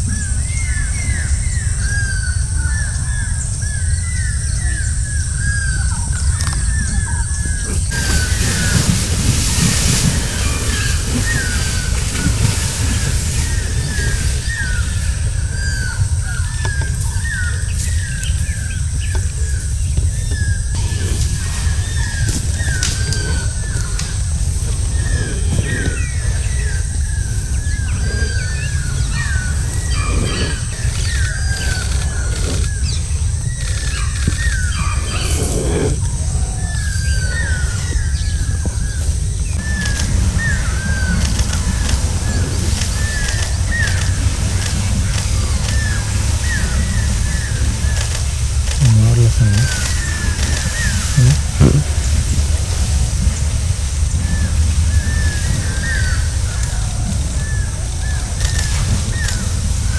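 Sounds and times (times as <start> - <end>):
small birds chirping: 0.0 - 53.4.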